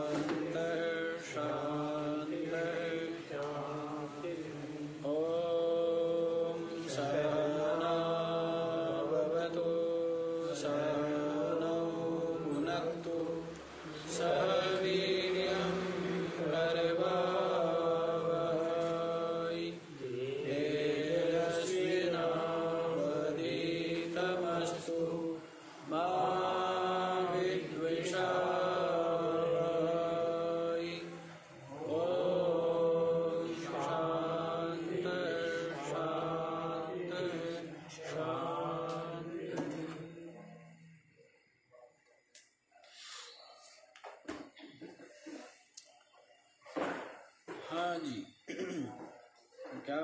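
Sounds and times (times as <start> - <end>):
man chanting: 0.0 - 28.3.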